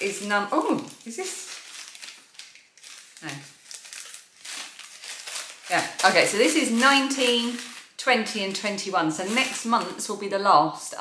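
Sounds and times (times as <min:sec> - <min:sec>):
packaging crinkling and rustling: 0:00.0 - 0:10.2.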